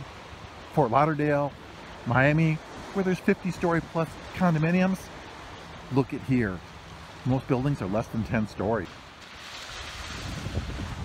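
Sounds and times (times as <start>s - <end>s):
surf washing up beach: 0.0s - 11.0s
wind buffeting microphone: 9.4s - 11.0s.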